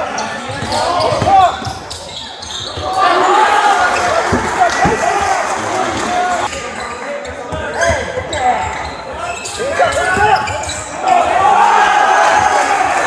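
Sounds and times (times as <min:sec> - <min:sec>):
crowd noise: 0:00.0 - 0:13.0
players shouting in a gym: 0:00.0 - 0:13.0.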